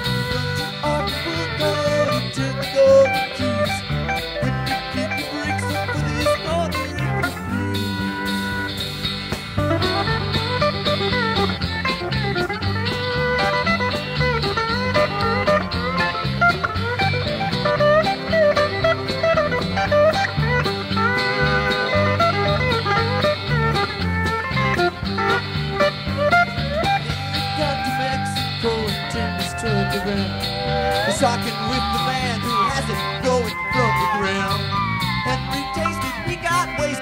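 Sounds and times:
drums: 0.0 - 37.0
electric bass: 0.0 - 37.0
electric guitars: 0.0 - 37.0
pedal steel guitar: 0.0 - 37.0.

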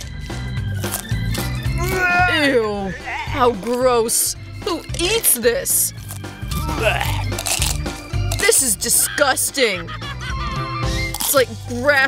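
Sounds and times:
background music: 0.0 - 12.0
broccoli crunching when chewed: 0.7 - 2.2, 5.9 - 8.6, 11.0 - 11.5.

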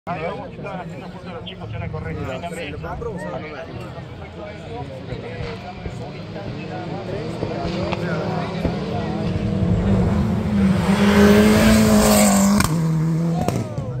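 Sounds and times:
rally car engine passing by: 5.4 - 14.0.

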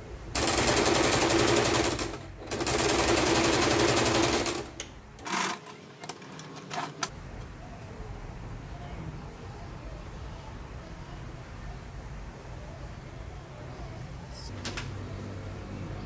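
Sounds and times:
sewing machine stitching: 0.4 - 7.1.

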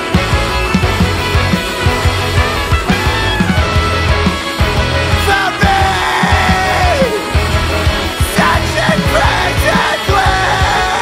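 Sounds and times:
instrumental rock band: 0.0 - 11.0.

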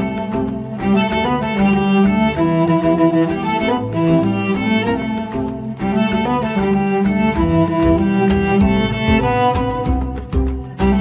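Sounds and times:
backing track with steady beat: 0.0 - 11.0
bowed cellos playing melody: 0.0 - 11.0.

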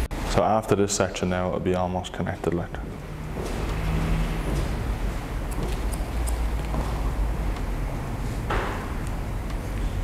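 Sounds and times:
scissors snipping hair: 5.5 - 6.7.

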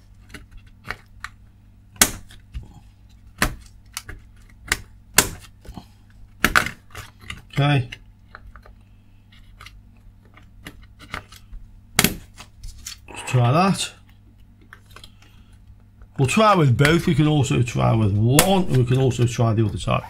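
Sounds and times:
short low hum of voice: 13.1 - 13.6.

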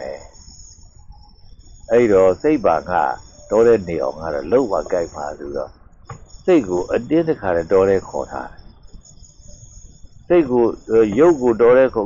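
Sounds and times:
man preaching: 0.0 - 0.3, 1.9 - 5.7, 6.5 - 8.6, 10.3 - 12.0
faint high-pitched ringing: 0.0 - 12.0.

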